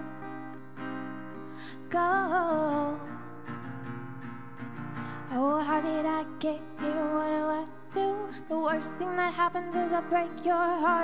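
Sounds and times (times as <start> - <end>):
acoustic guitar strummed softly: 0.0 - 11.0
person singing: 1.7 - 3.1, 5.3 - 11.0.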